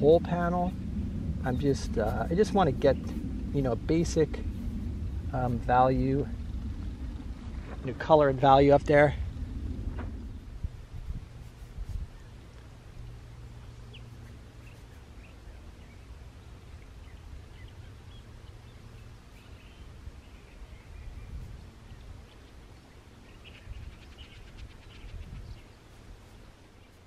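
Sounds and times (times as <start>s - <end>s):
low steady rumble: 0.0s - 27.0s.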